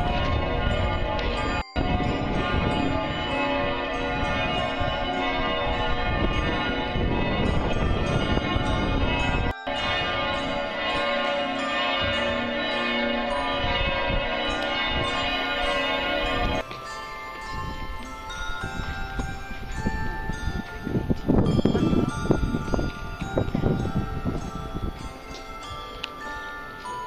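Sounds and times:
church bells pealing: 0:00.0 - 0:27.0.

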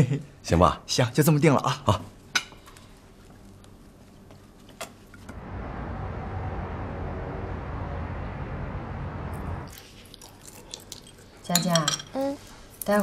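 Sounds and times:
low steady hum: 0:05.2 - 0:11.4
chopsticks and bowls clinking: 0:10.2 - 0:12.3.

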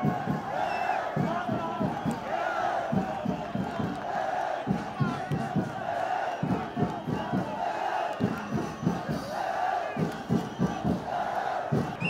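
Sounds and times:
men chanting and singing: 0:00.0 - 0:12.0
steady rhythmic beat: 0:00.0 - 0:12.0.

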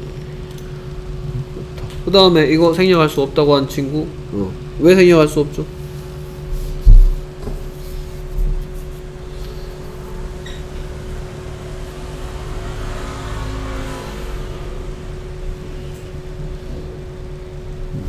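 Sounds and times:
low hum and rumble: 0:00.0 - 0:18.0.

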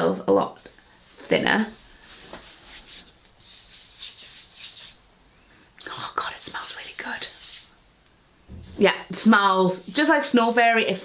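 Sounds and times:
hands rubbing lotion into skin: 0:02.1 - 0:05.0, 0:06.9 - 0:07.7.

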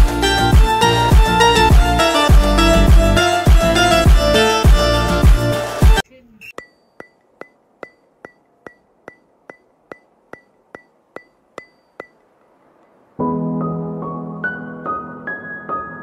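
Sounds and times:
background music: 0:00.0 - 0:06.0, 0:13.2 - 0:16.0.

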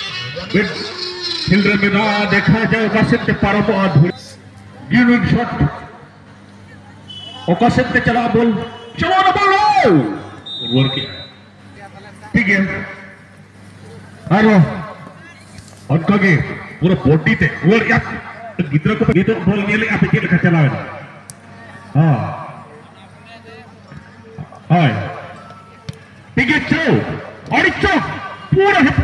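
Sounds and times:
man calling out: 0:00.0 - 0:04.2, 0:07.4 - 0:11.2
crowd murmur: 0:00.0 - 0:09.0, 0:09.8 - 0:29.0.

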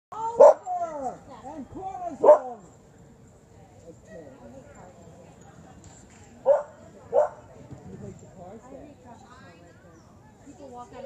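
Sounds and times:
dog barking: 0:00.4 - 0:00.6, 0:02.2 - 0:02.5, 0:06.5 - 0:07.4.

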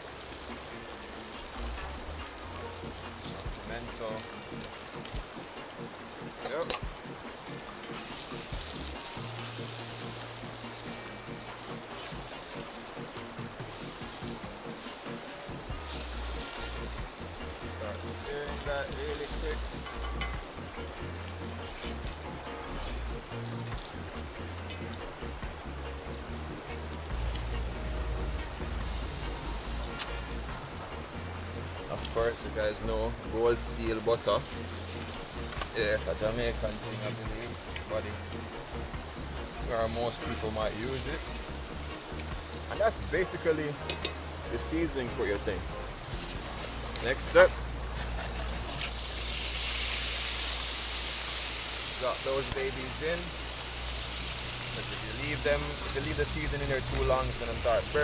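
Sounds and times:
background music: 0:00.0 - 0:58.0
food sizzling in oil: 0:00.0 - 0:58.0.

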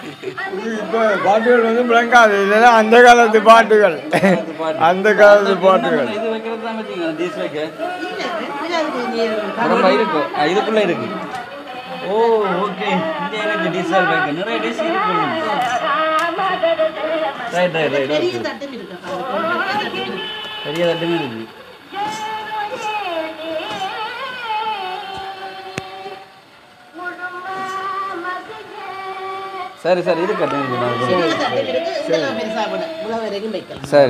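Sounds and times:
faint music: 0:00.0 - 0:34.0
voices talking: 0:00.0 - 0:34.0.

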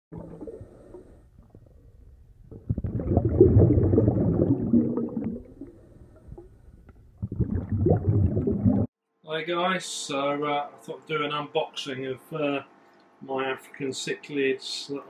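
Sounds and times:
underwater rumbling and gurgling: 0:00.1 - 0:08.9.

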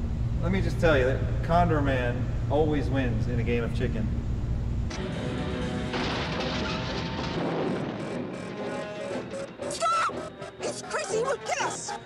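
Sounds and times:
low room hum: 0:00.0 - 0:12.0
film music with held tones: 0:04.9 - 0:12.0.

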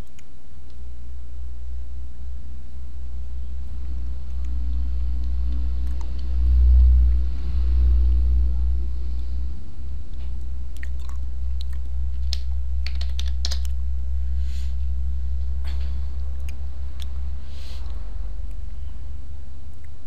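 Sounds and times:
steady low hum: 0:00.0 - 0:20.0
computer keyboard typing: 0:12.2 - 0:13.8.

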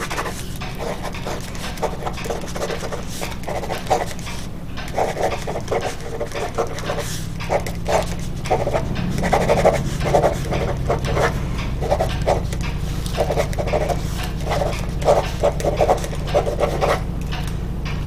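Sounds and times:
pen scratching on notepad: 0:00.0 - 0:17.0
steady low hum: 0:00.0 - 0:18.0.

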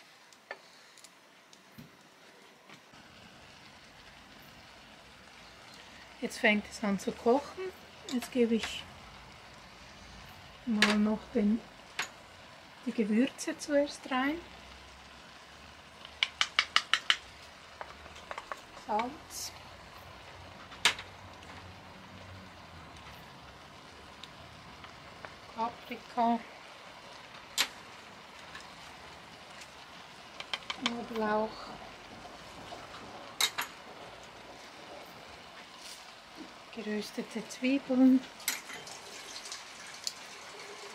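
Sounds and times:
mushrooms simmering bubbling hiss: 0:00.0 - 0:40.9
wooden spatula tapping skillet rim: 0:16.0 - 0:19.1, 0:30.4 - 0:31.3.

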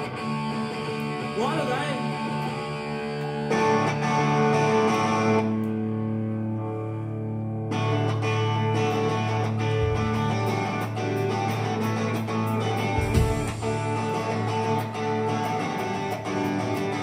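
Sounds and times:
punk rock band playing: 0:08.5 - 0:17.0
heavy low thump: 0:09.7 - 0:10.6, 0:13.0 - 0:13.8.

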